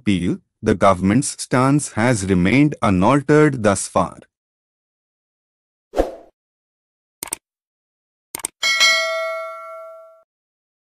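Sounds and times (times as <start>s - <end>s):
mouse clicks: 8.4s - 8.6s
bell ding: 8.6s - 10.3s.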